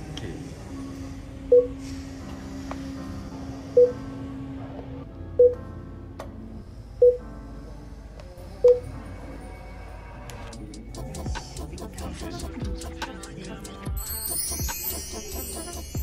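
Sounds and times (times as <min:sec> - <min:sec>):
background music: 0:00.0 - 0:16.0
short electronic beeps: 0:01.5 - 0:01.8.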